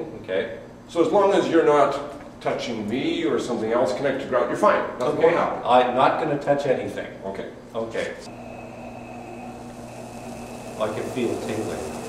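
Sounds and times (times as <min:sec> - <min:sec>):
faint high whine: 0:08.3 - 0:12.0
motor and belt hum: 0:08.3 - 0:12.0.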